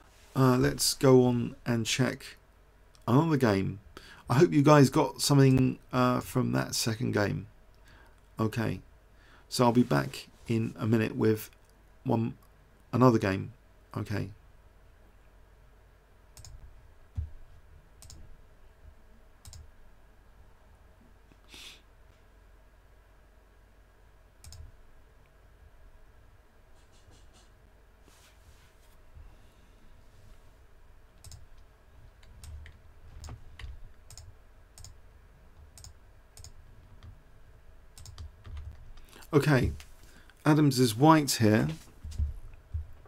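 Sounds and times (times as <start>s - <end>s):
computer mouse clicks: 16.4s - 16.6s, 18.0s - 18.2s, 19.4s - 19.7s, 24.4s - 24.7s, 31.2s - 35.0s, 35.7s - 37.1s, 38.0s - 39.1s
soft low thumps: 16.6s - 19.0s, 42.0s - 43.0s.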